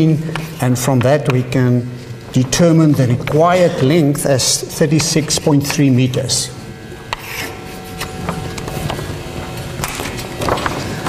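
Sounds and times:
chalk scratching on chalkboard: 7.1 - 8.1
chalk tapping on chalkboard: 7.1 - 8.4.

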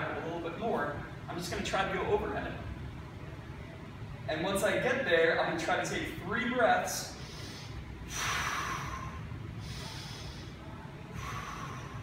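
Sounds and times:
man breathing deeply: 7.1 - 12.0.

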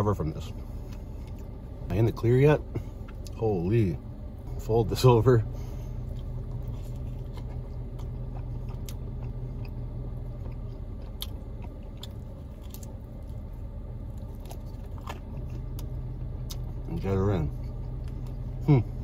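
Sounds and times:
steady low hum: 0.0 - 19.0
close chewing: 6.0 - 19.0.

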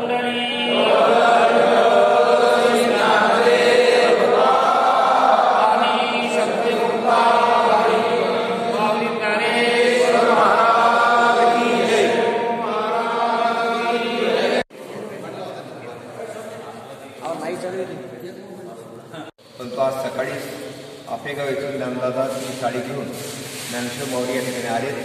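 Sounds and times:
voices chanting a prayer: 0.0 - 17.2.

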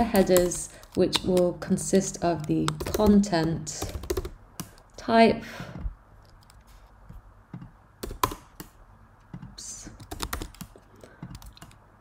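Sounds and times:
computer keyboard typing: 0.0 - 4.9, 7.6 - 11.8.

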